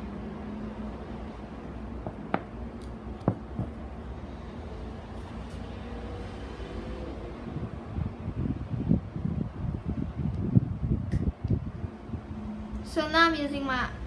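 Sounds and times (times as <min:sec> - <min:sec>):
handling thumps and knocks: 0:02.0 - 0:02.6, 0:03.2 - 0:03.8.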